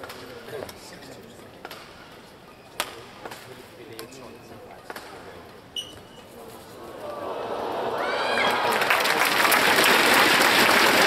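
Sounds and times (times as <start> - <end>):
court shoes squeaking: 0.0 - 6.8
racket striking shuttlecock: 2.8 - 4.1.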